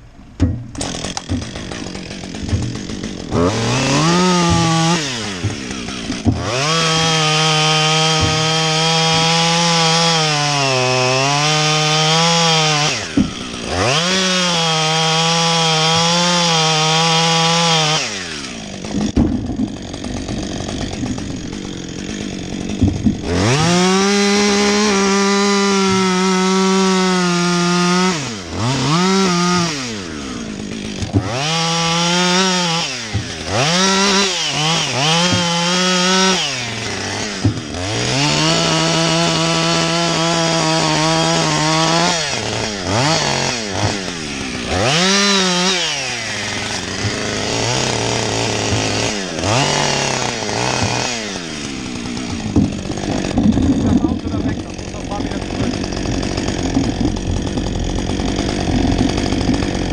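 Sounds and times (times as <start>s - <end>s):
chainsaw cutting and revving: 0.7s - 59.9s.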